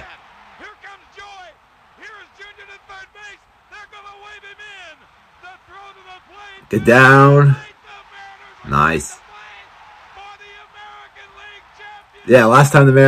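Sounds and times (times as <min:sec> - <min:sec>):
man commentating on television: 0:00.0 - 0:13.0.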